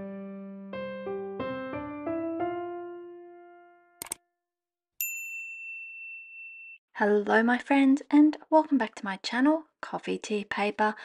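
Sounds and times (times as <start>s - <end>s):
mouse click: 4.0s - 4.2s.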